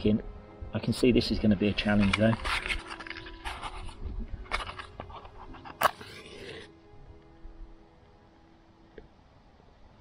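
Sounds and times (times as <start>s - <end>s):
match scraping on matchbox: 1.9s - 6.8s.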